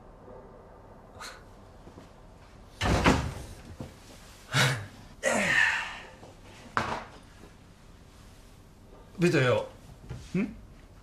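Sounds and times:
loud thud: 0:02.8 - 0:03.6.

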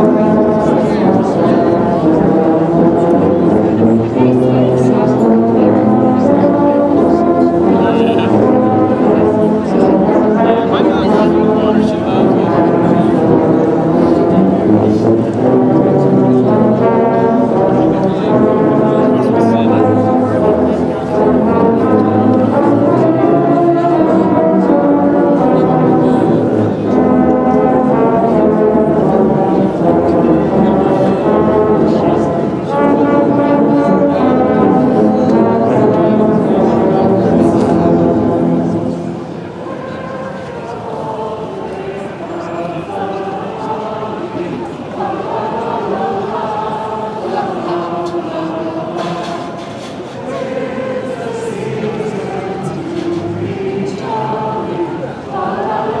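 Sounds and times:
low brass ensemble playing carol: 0:00.0 - 0:56.0.

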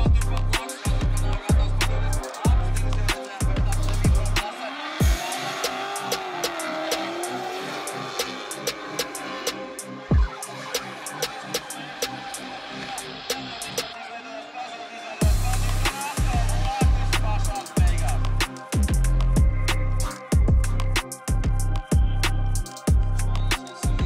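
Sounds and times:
electronic music with heavy bass: 0:00.0 - 0:24.0.

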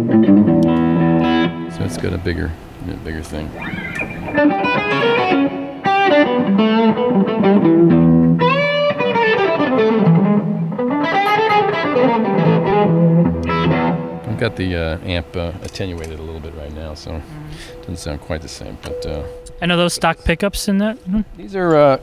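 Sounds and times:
electric guitar lead with string bends: 0:00.0 - 0:02.8, 0:03.4 - 0:21.4.

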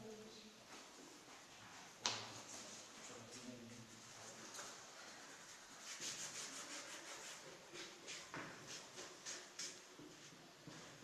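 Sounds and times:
low room hiss: 0:00.0 - 0:11.0
scratchy rubbing and scraping: 0:05.4 - 0:09.7.

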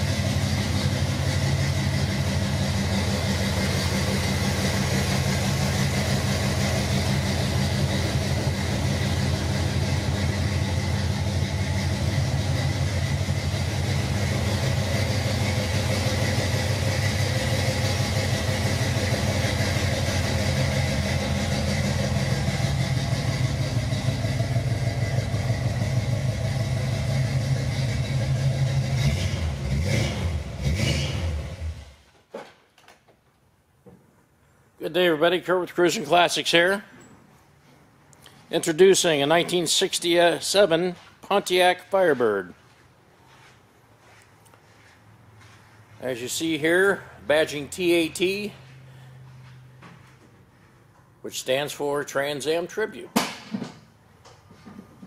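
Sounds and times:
engine idling: 0:00.0 - 0:32.1.

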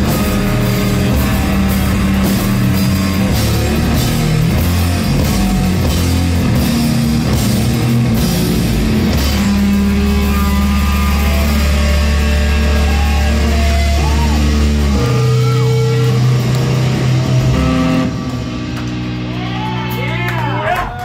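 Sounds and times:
bass guitar: 0:00.0 - 0:21.0
drum kit: 0:00.0 - 0:21.0
electric guitar: 0:00.0 - 0:21.0.

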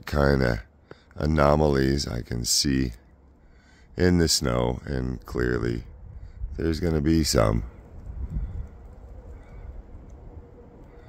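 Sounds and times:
low rumble on microphone: 0:03.5 - 0:11.0.

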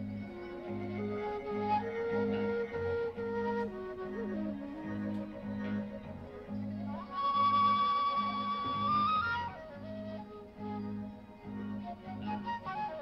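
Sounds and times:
flute melody: 0:00.0 - 0:13.0.

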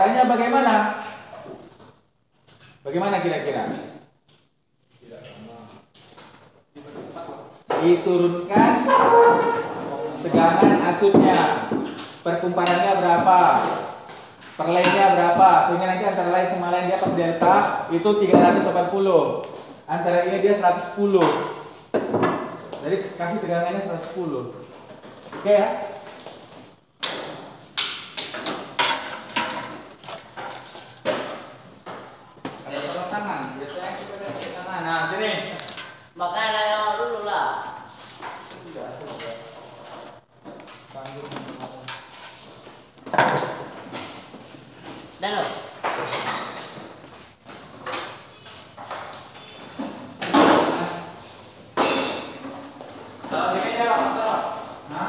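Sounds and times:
sharp knocks and clatters: 0:27.0 - 0:32.6.

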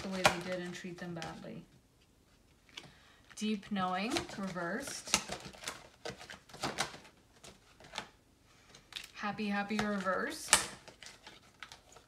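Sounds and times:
cards rustling: 0:00.0 - 0:12.0
cards clicking and snapping: 0:04.0 - 0:12.0.

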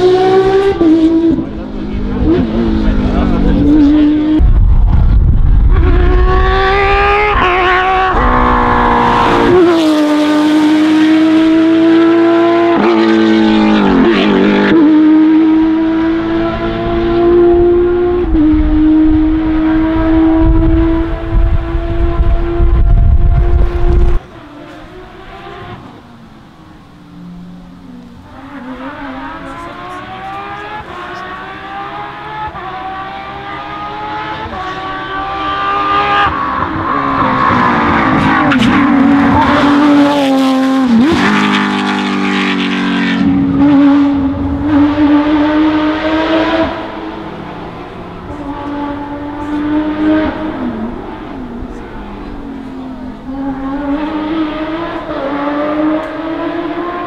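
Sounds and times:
rally car engine passing: 0:00.0 - 0:57.0.

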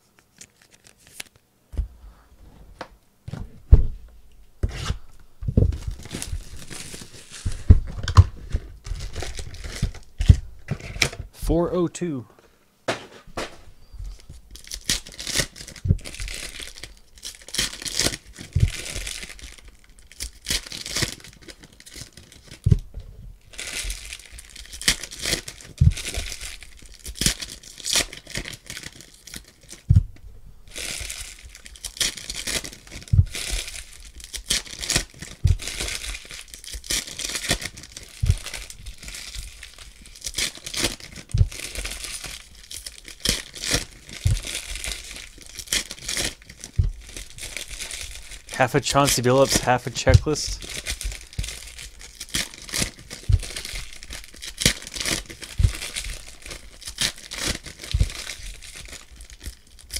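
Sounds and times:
foil wrappers crinkling and tearing: 0:00.0 - 0:01.4, 0:05.7 - 0:11.2, 0:13.4 - 0:22.8, 0:23.4 - 0:29.9, 0:30.7 - 0:59.9
low thump: 0:03.4 - 0:04.1, 0:29.9 - 0:30.2.

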